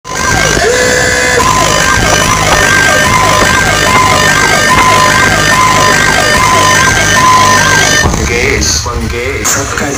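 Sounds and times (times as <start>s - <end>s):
siren-like electronic tones: 0.0s - 8.5s
loud dj music: 0.1s - 9.9s.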